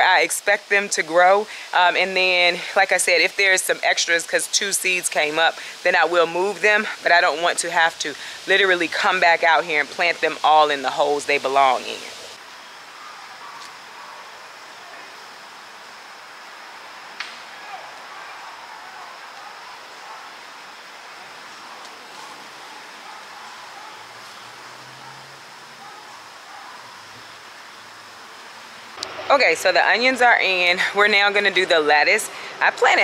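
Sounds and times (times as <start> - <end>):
hissing outdoor background noise: 0.0 - 33.0.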